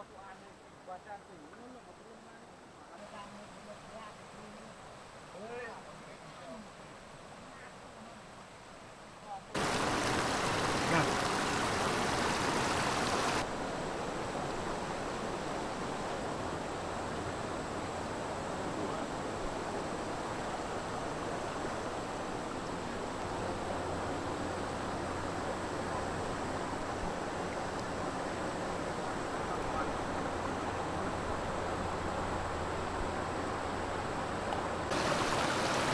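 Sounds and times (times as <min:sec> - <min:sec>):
river rushing over rocks: 0:02.5 - 0:35.9.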